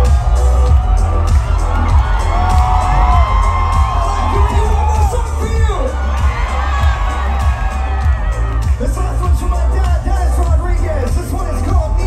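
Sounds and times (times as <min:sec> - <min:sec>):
audience cheering: 0:00.0 - 0:12.0.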